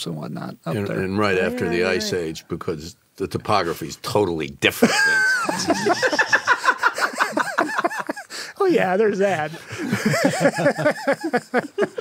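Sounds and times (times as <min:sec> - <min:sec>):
people laughing: 0:04.8 - 0:08.5, 0:09.5 - 0:12.0.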